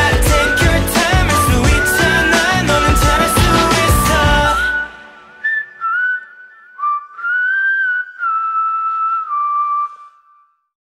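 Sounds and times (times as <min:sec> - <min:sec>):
music mix: 0:00.0 - 0:07.6
whistled melody: 0:00.0 - 0:10.8.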